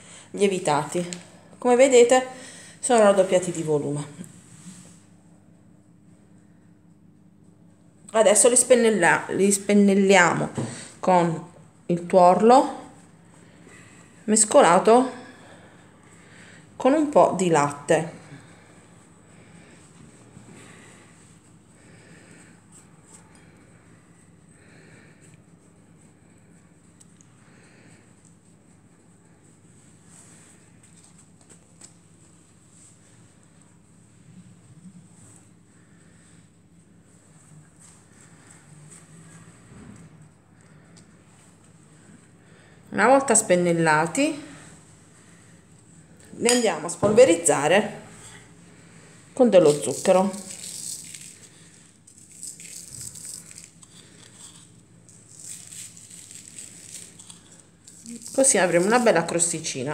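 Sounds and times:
low steady hum: 0.0s - 59.9s
pastry brush dabbing dough: 46.1s - 59.9s
sugar sprinkling rattle: 49.4s - 59.8s.

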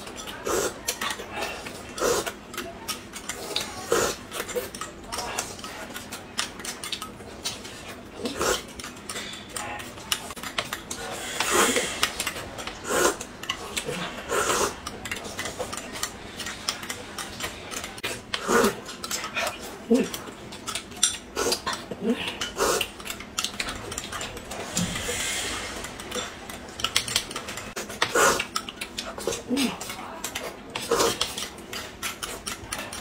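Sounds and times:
chewing: 0.0s - 33.0s
slurping soup: 10.2s - 19.0s, 21.3s - 29.8s, 30.5s - 33.0s.

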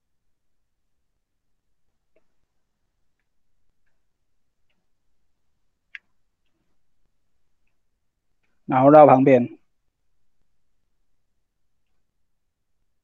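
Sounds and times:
faint ticks of cord and card: 5.9s - 8.6s.

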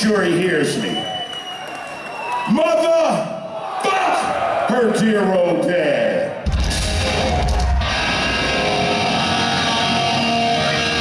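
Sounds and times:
distorted electric guitars chord: 6.5s - 11.0s.

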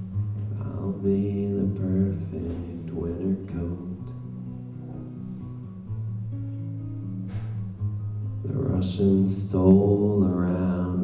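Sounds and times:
acoustic guitar playing: 0.0s - 11.0s
man singing: 0.5s - 4.3s, 8.4s - 11.0s.

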